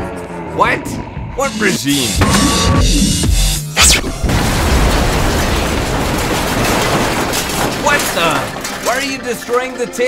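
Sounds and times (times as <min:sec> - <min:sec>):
building collapsing and burning: 0:03.8 - 0:10.0.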